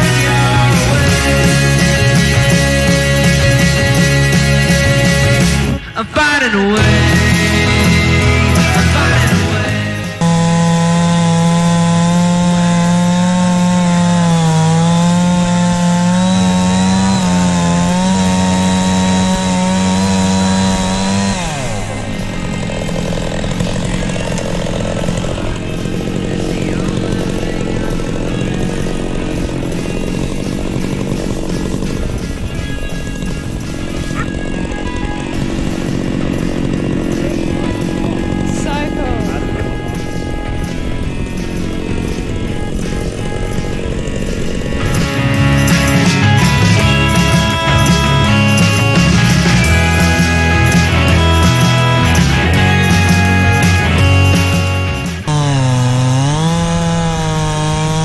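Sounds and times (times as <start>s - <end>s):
music: 0.0s - 56.4s
chainsaw cutting log: 0.0s - 58.0s.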